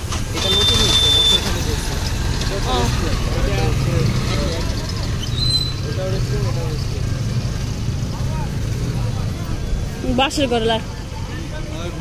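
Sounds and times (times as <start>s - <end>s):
low rumble of road traffic: 0.0s - 12.0s
people's voices: 0.0s - 12.0s.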